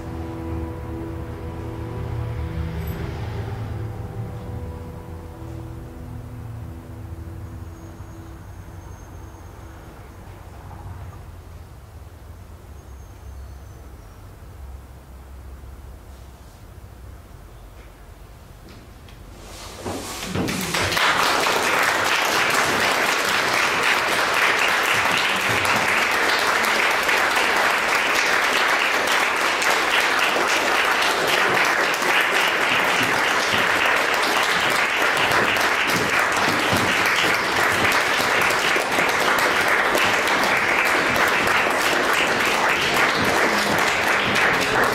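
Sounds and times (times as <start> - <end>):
audience applause: 20.2 - 44.9.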